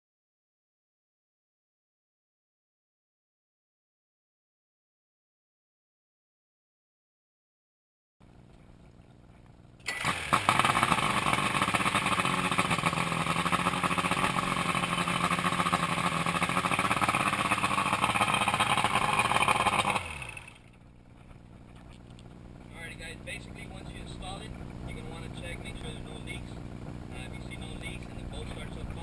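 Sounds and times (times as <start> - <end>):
outboard motor running: 8.2 - 29.0.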